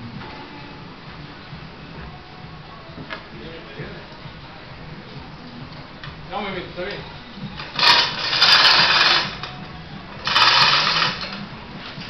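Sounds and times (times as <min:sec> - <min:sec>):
hoist mechanical clatter: 0:07.6 - 0:09.6.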